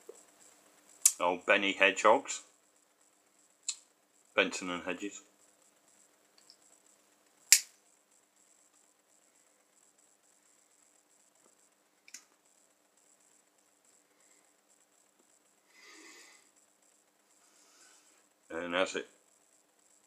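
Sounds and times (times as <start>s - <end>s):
lighter clicking: 7.5s - 7.8s.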